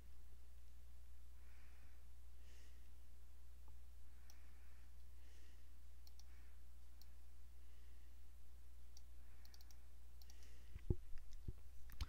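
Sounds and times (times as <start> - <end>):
low electrical hum: 0.0 - 12.0
computer mouse clicks: 6.0 - 6.3, 8.9 - 12.0.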